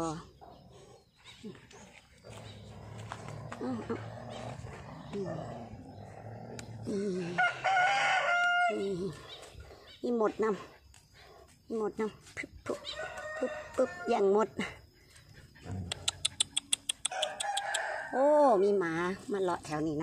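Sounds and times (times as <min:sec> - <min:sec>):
rooster crowing: 0:07.4 - 0:08.9, 0:12.8 - 0:14.2, 0:17.1 - 0:18.2.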